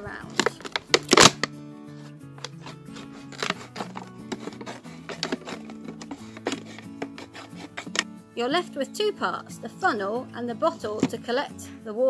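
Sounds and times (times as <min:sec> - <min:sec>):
background music: 0:00.0 - 0:12.0
scissors cutting plastic bottle: 0:00.2 - 0:08.1.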